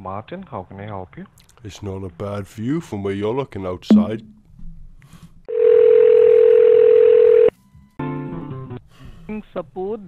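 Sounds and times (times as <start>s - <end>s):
telephone ringback tone: 5.5s - 7.5s.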